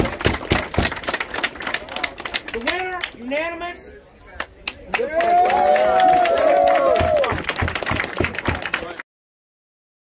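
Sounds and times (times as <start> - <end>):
crowd clapping: 0.0 - 3.4, 4.4 - 9.0.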